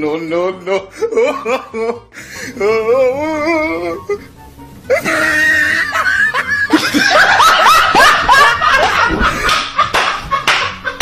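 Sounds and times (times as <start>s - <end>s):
person laughing hard: 0.7s - 2.8s, 4.9s - 11.0s.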